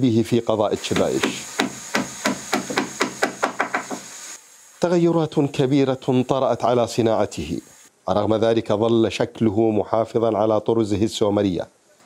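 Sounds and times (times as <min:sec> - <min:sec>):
hand tool knocking on wood: 0:00.9 - 0:04.1.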